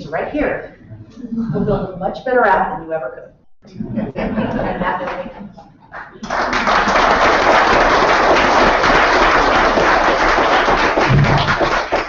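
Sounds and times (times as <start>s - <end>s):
audience applauding: 5.9s - 12.0s.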